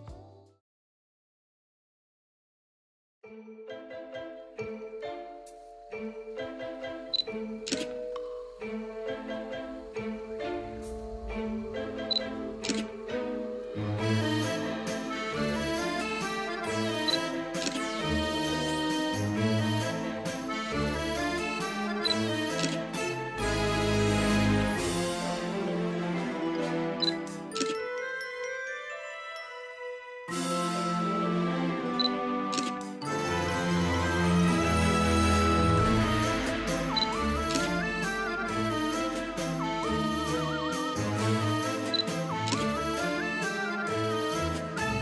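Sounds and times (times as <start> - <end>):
instrumental background music: 3.2 - 45.0.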